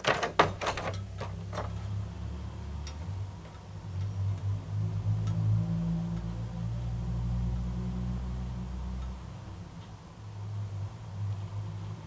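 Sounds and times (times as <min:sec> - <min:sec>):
low engine hum: 0:01.0 - 0:12.0.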